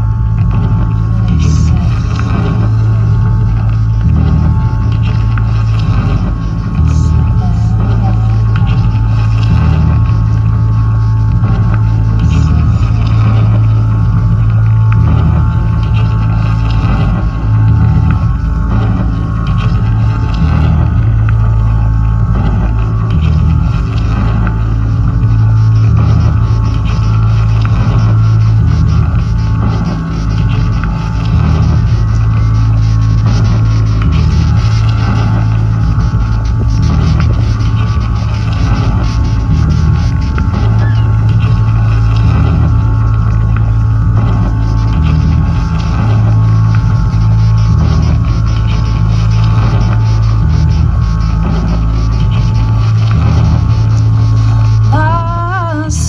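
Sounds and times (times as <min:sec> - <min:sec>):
electronic music over speakers: 0:00.0 - 0:56.0.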